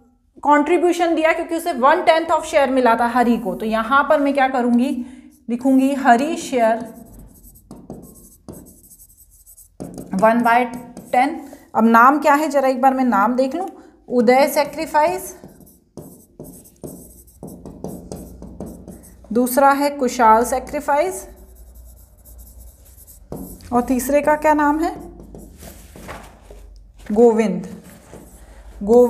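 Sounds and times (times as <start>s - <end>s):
stylus scratching on glass: 6.8s - 11.3s, 14.9s - 19.3s, 21.2s - 25.6s.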